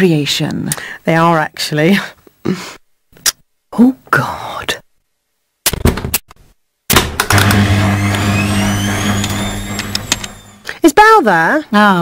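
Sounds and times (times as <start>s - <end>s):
washing machine humming and whining: 7.3s - 10.6s
clicks: 8.9s - 10.4s.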